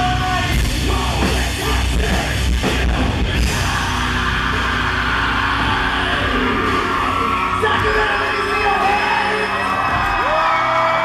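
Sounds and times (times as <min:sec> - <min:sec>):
distorted electric guitars: 0:00.0 - 0:11.0.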